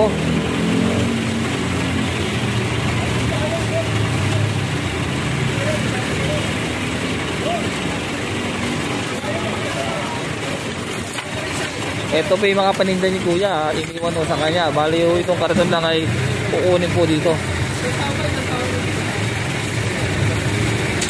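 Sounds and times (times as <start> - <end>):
traffic: 0.0 - 21.0
vehicle engine running: 0.0 - 21.0
faint voices: 2.9 - 21.0.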